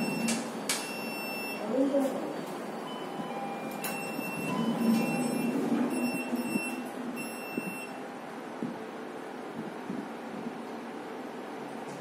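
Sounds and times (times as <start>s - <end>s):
elevator running rumble: 0.0s - 12.0s.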